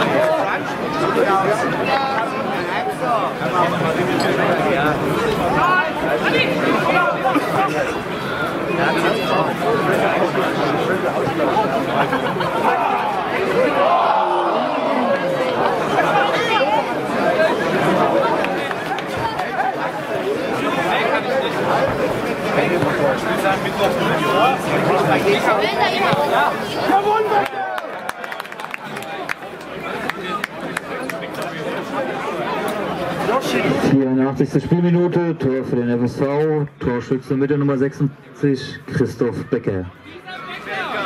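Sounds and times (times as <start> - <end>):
players shouting: 0.0 - 33.7, 39.2 - 41.0
spectators talking: 0.0 - 41.0.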